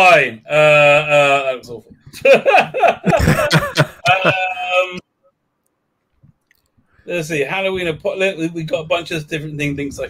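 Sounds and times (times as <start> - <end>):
man laughing: 2.2 - 5.0.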